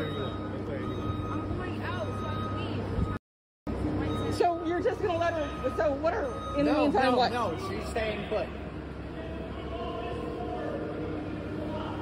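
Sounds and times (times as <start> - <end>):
high-pitched tone: 0.0 - 8.6
faint voices: 3.8 - 12.0.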